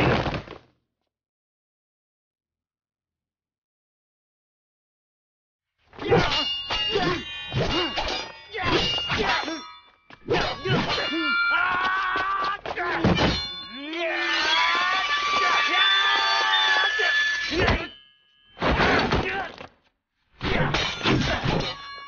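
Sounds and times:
fighters grunting and shouting: 6.0s - 14.9s, 15.5s - 18.0s, 18.7s - 19.7s, 20.4s - 21.8s
sword blades clashing: 6.0s - 19.5s, 20.5s - 22.0s.

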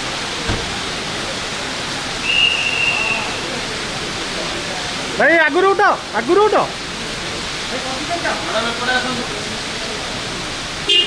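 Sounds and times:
heavy rain falling: 0.0s - 11.0s
high whistle-like tone: 2.2s - 3.4s.

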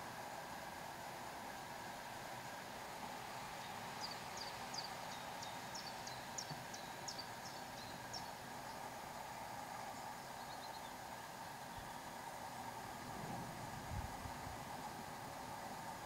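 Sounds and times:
background hiss: 0.0s - 16.0s.

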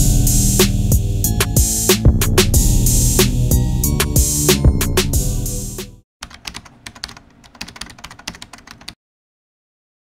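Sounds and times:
keyboard key clicks: 6.2s - 9.0s.

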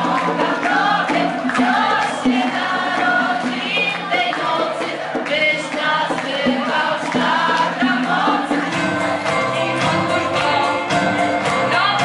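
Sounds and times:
choir singing a carol: 0.0s - 11.6s
light rhythmic accompaniment: 0.0s - 12.0s.

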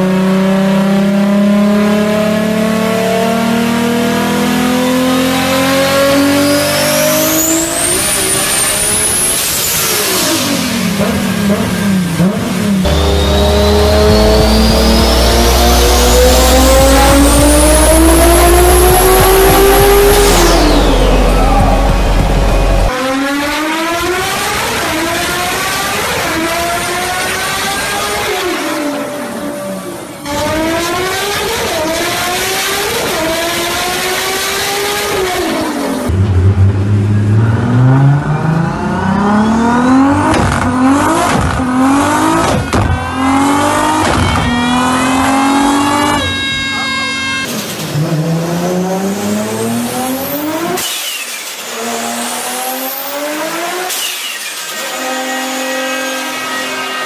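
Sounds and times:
car engine revving on dyno: 0.0s - 57.0s.

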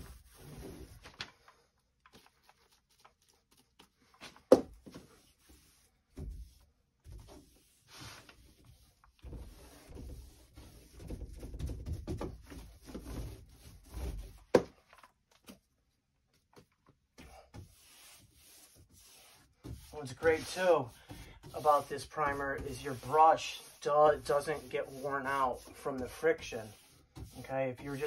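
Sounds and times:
paint roller rubbing on door: 0.0s - 1.1s, 5.0s - 14.5s, 17.5s - 28.0s.

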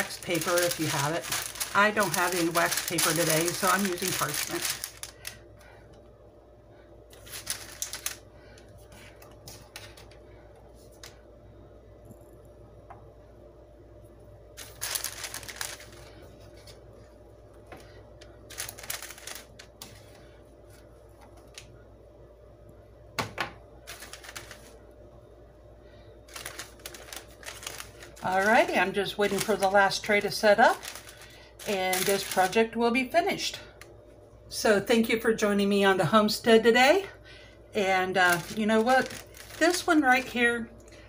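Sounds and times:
pretzels peeled off baking mat: 0.0s - 5.4s, 7.1s - 8.2s, 14.6s - 16.2s, 18.5s - 21.6s, 23.9s - 24.8s, 26.3s - 32.8s, 38.1s - 40.3s
faint steady hum: 0.0s - 41.0s.

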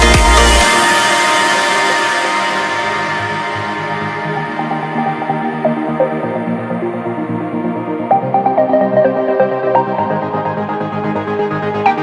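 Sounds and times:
held synth tones: 0.6s - 10.7s.

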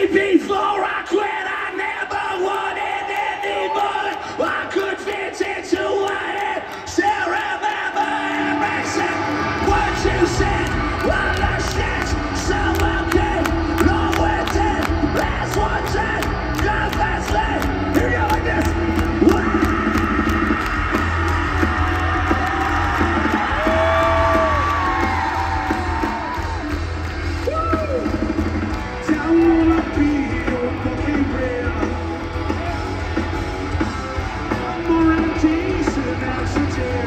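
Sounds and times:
live rock band playing: 8.4s - 37.0s.

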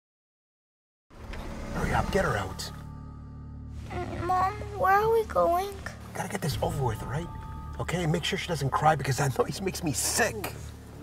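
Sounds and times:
car engine humming: 1.1s - 11.0s
man talking: 1.8s - 2.8s, 6.1s - 10.6s.

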